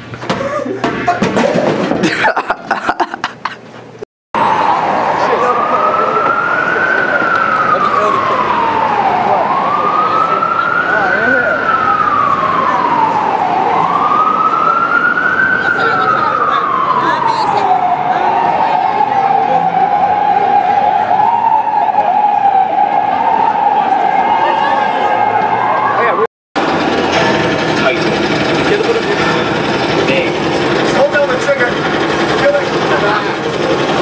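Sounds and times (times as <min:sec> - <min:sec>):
emergency vehicle siren wailing: 0:04.4 - 0:34.0.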